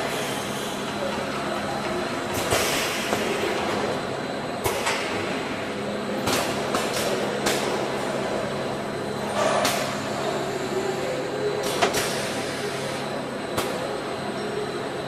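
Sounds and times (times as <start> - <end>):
packaging machine humming: 0.0 - 15.0
sharp pneumatic clacks: 2.3 - 4.0, 9.3 - 10.1, 11.6 - 13.9
pneumatic air hiss: 2.5 - 3.3, 11.6 - 13.0.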